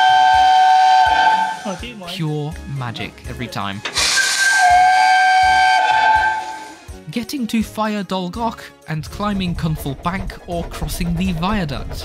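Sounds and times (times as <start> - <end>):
steam locomotive whistle: 0.0 - 2.0, 3.9 - 7.0.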